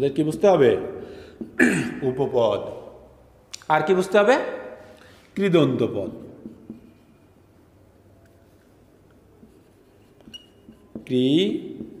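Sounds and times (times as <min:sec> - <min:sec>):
marker pen writing on whiteboard: 0:06.0 - 0:12.0.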